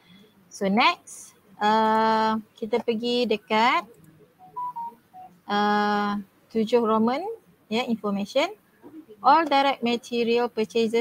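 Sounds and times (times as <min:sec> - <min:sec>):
short faint beeps: 0:04.4 - 0:05.4.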